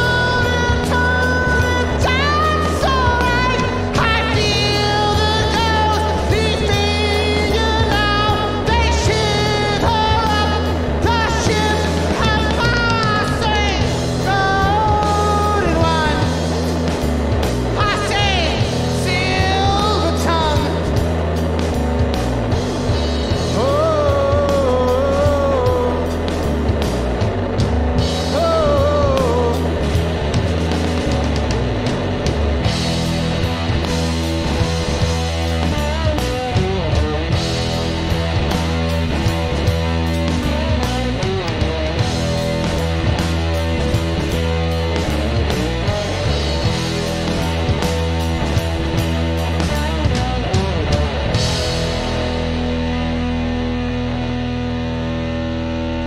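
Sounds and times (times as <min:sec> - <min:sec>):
person singing: 0:00.0 - 0:17.0, 0:17.6 - 0:21.1, 0:23.3 - 0:26.8, 0:28.0 - 0:31.6
loud rock band playing: 0:00.0 - 0:56.0.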